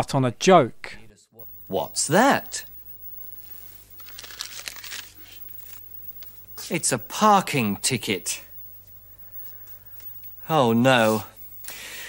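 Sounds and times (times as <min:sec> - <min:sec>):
faint steady hum: 0:00.0 - 0:12.0
plastic bag crinkling: 0:03.4 - 0:06.4.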